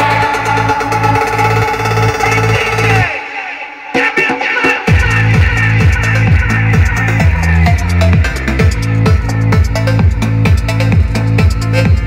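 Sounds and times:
pulsing bass: 0:00.0 - 0:03.1, 0:04.9 - 0:12.0
electronic dance track: 0:00.0 - 0:12.0.

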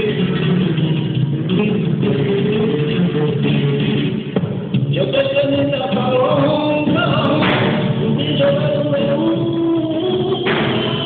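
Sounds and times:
guitar accompaniment: 0:00.0 - 0:11.0
person singing long bending lines: 0:04.9 - 0:11.0
sharp knock: 0:06.9 - 0:07.8.

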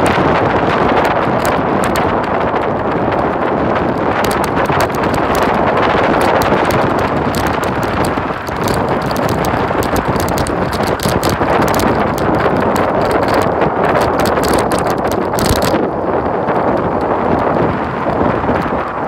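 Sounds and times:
wind buffeting a microphone: 0:00.0 - 0:19.0.

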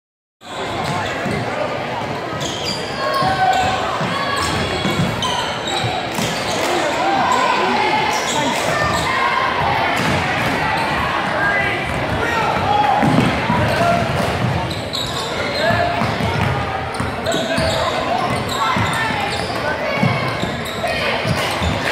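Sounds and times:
crowd chatter: 0:00.4 - 0:21.9
voices shouting: 0:02.4 - 0:14.2.

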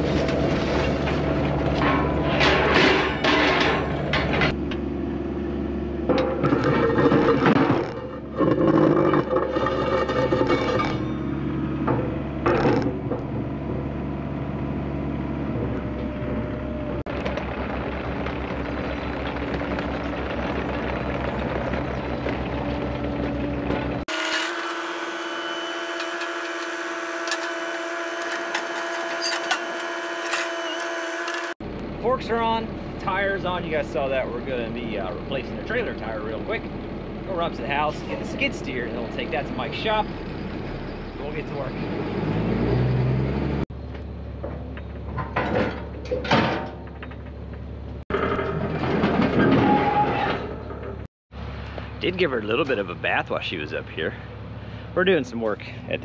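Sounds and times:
excavator diesel engine running: 0:03.2 - 0:24.0
forks clanking and scraping: 0:06.4 - 0:11.2.

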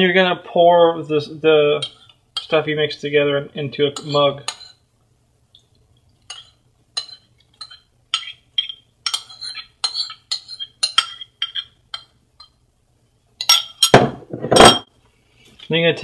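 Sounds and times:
metal spoon clinking on bowl: 0:04.0 - 0:04.8, 0:06.3 - 0:12.6, 0:13.4 - 0:14.0.

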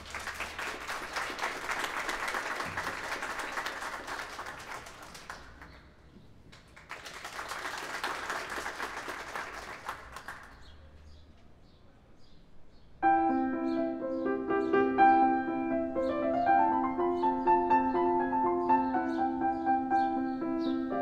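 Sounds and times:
small audience clapping: 0:00.0 - 0:10.7.

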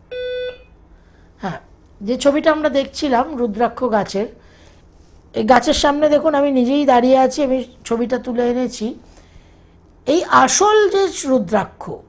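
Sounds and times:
short electronic beep: 0:00.1 - 0:00.7.

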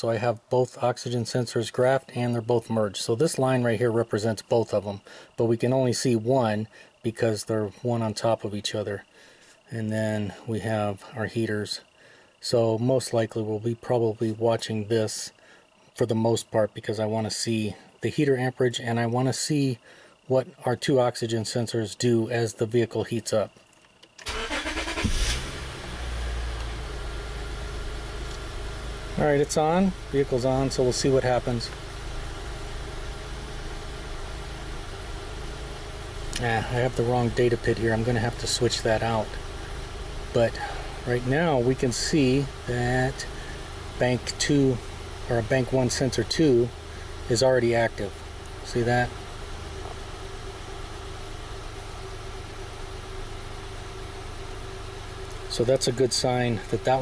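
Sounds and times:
car engine idling: 0:24.2 - 0:57.0.

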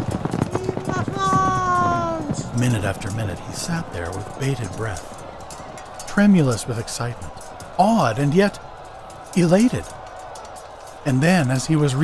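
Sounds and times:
horses' hooves galloping: 0:00.0 - 0:12.0
long held call: 0:00.5 - 0:02.4.

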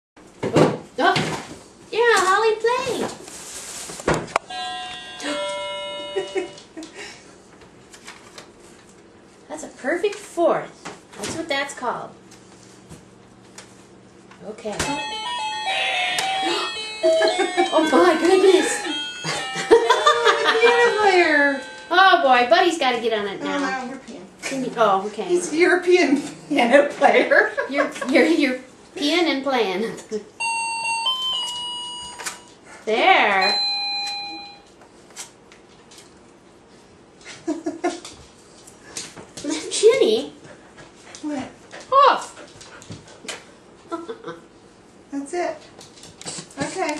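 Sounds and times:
toy electronic keyboard notes: 0:04.5 - 0:06.7, 0:14.8 - 0:22.3, 0:30.4 - 0:32.6, 0:33.4 - 0:34.7
high wavering voice: 0:14.9 - 0:22.0.

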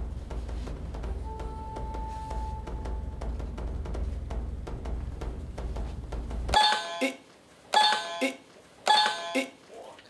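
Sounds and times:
music with a drumbeat: 0:00.0 - 0:07.0
electronic two-note chime: 0:01.2 - 0:03.2.

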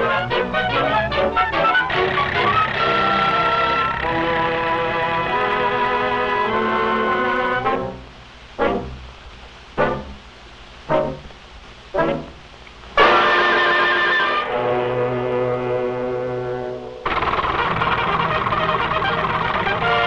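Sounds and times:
loud held brass chords: 0:00.0 - 0:09.0, 0:12.0 - 0:12.4, 0:13.0 - 0:20.0
accented brass notes: 0:00.0 - 0:20.0.

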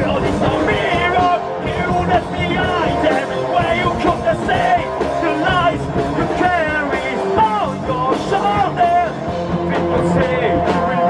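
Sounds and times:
person singing: 0:00.0 - 0:11.0
rock band playing: 0:00.0 - 0:11.0.

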